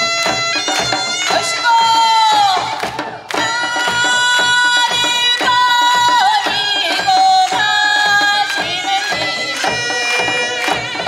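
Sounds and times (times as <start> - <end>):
drums steady beat: 0.0 - 11.0.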